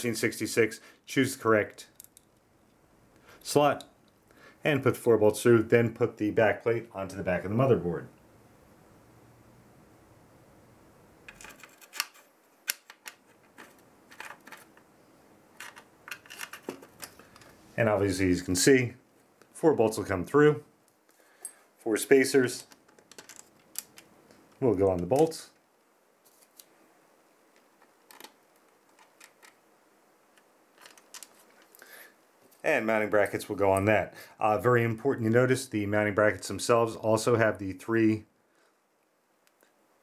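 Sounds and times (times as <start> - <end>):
light clicks and taps of metal parts: 1.9 - 2.8, 22.6 - 25.3.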